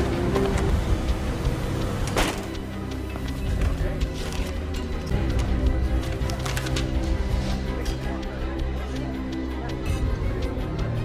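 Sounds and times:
street traffic noise: 0.0 - 9.1
tense film score music: 0.0 - 11.0.

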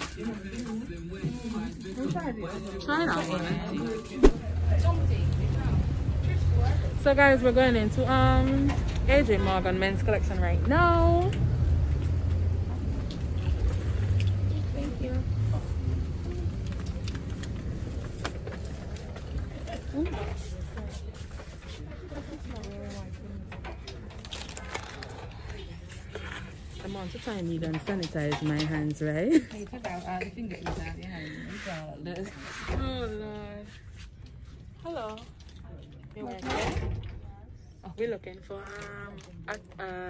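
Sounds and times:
rumble of road traffic: 4.3 - 40.0.

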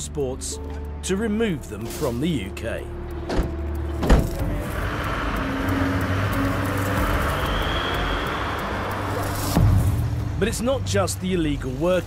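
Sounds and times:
road noise: 0.0 - 12.0
van engine pulling away: 3.1 - 10.4
vehicle door slamming: 3.3 - 4.5.

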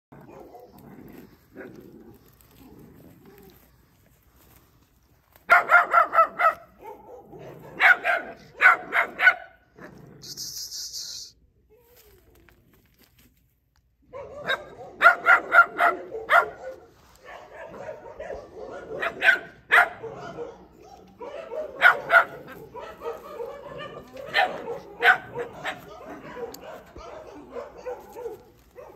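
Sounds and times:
short hiss: 10.2 - 11.4
puppies yapping: 17.4 - 28.9.

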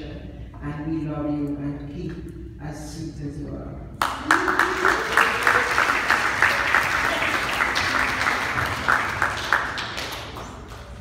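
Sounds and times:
congregation clapping: 4.0 - 11.0.

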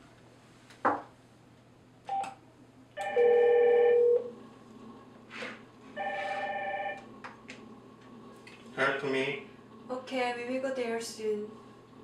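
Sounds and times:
electronic telephone ringing: 3.0 - 4.3, 6.0 - 7.0.

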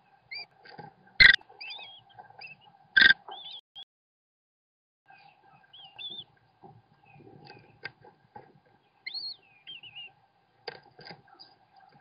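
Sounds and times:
bird nestlings chirping and squealing: 1.2 - 3.6, 5.1 - 6.2, 9.0 - 10.2.

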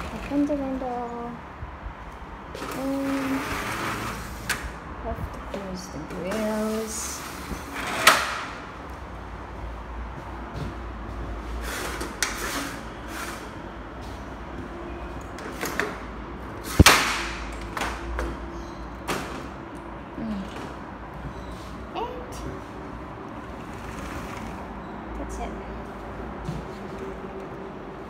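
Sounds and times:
window panes sliding and knocking: 2.5 - 4.8, 6.1 - 8.6, 23.4 - 24.7.

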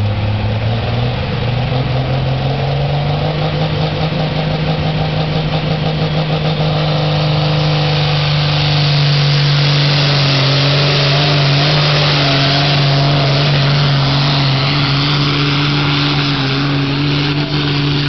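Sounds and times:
diesel tractor engine revving: 0.0 - 18.0.

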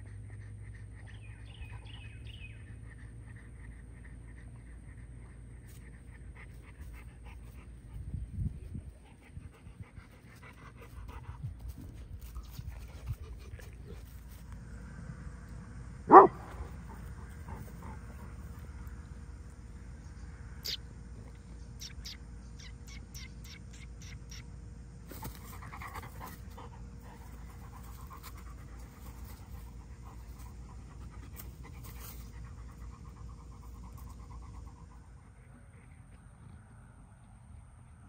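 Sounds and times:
dog panting: 0.0 - 14.5, 16.1 - 18.9, 25.2 - 36.2
dog barking: 16.1 - 16.7.

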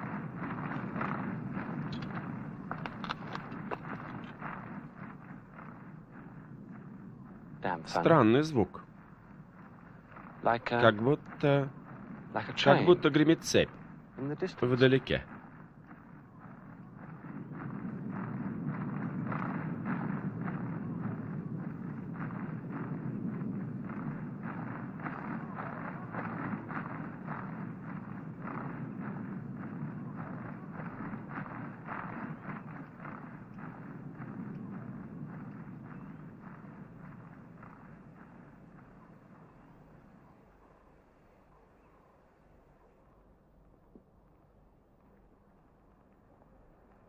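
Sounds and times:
low rumble: 0.0 - 41.0
distant massed rhythmic beat: 0.0 - 47.0.

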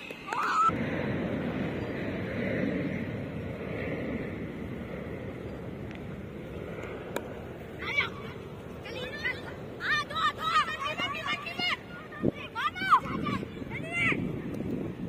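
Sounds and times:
young voices calling out: 7.8 - 14.2.

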